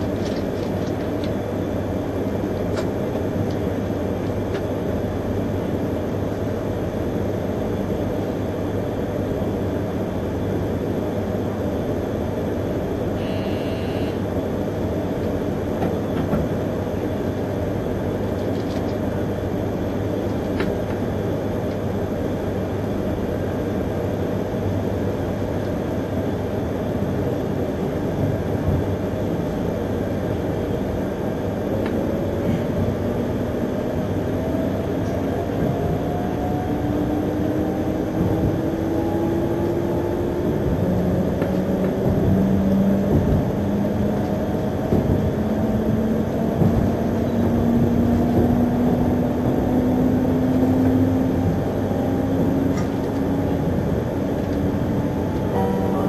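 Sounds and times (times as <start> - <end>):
wheels rumbling on rail: 0.0 - 56.0.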